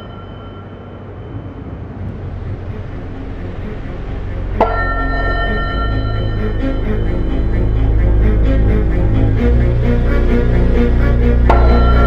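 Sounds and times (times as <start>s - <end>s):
dark music with held tones: 0.0s - 12.0s
low rumble: 0.0s - 12.0s
sharp hit: 4.3s - 8.0s, 11.4s - 12.0s.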